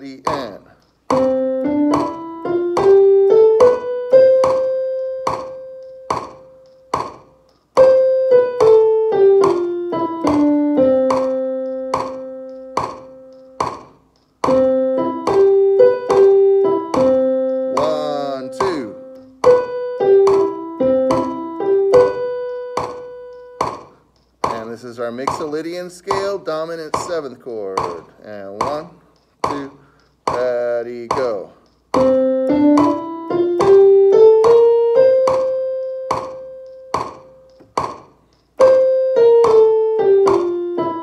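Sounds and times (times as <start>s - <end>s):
electronic keyboard playing a scale: 1.1s - 13.7s, 14.4s - 23.7s, 32.0s - 37.7s, 38.6s - 41.0s.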